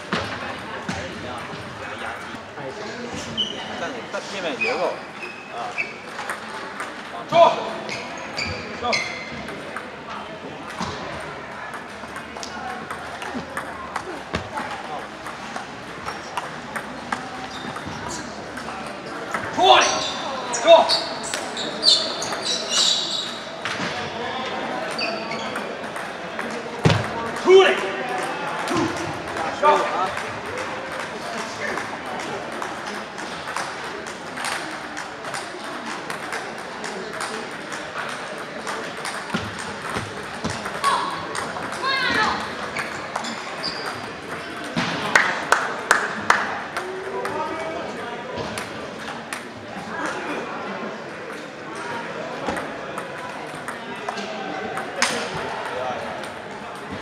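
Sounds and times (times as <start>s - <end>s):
voices: 0.0s - 57.0s
table tennis balls clicking: 6.0s - 7.2s, 9.3s - 19.6s, 21.2s - 23.5s, 24.8s - 45.6s, 52.4s - 57.0s.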